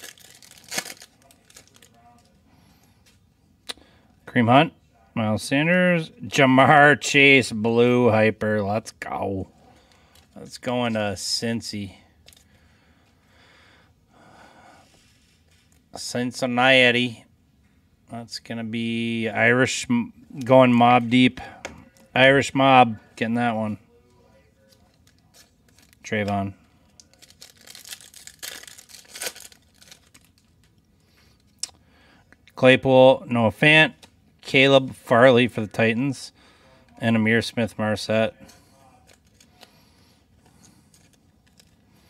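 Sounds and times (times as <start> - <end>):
foil pack tearing and crinkling: 0.0 - 2.0, 27.0 - 30.5
soft wrapper rustling: 0.0 - 2.4, 24.6 - 30.8, 38.9 - 42.0
soft breathing: 2.3 - 4.2, 9.5 - 10.4, 12.0 - 15.7, 36.3 - 37.0, 38.4 - 42.0.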